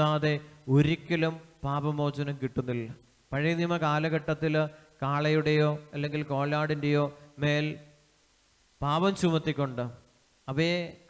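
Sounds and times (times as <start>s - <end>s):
man preaching through microphone: 0.0s - 8.0s, 8.8s - 11.0s.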